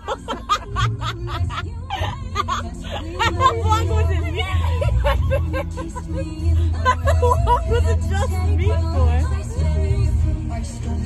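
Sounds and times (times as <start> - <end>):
women laughing hard: 0.0 - 8.4
background music: 0.0 - 11.0.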